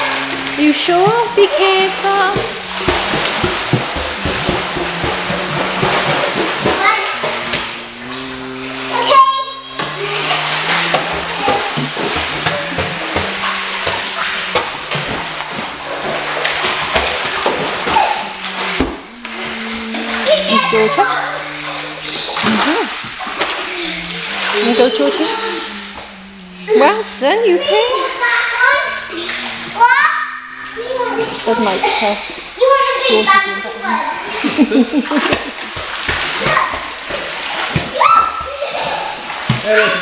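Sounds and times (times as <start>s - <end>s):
children's voices: 0.0s - 15.8s, 17.4s - 35.3s, 37.8s - 40.0s
slow background music: 0.0s - 27.6s
water splashing: 0.0s - 40.0s.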